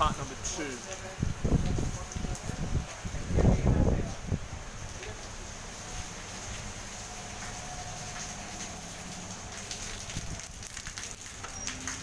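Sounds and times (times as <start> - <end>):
heavy rain: 0.0 - 12.0.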